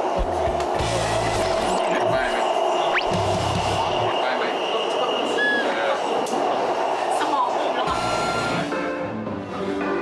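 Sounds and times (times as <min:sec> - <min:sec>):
train hiss and rumble: 0:00.0 - 0:08.2.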